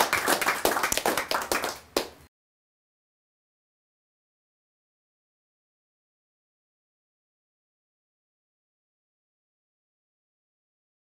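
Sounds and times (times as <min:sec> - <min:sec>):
audience applauding: 0:00.0 - 0:02.2.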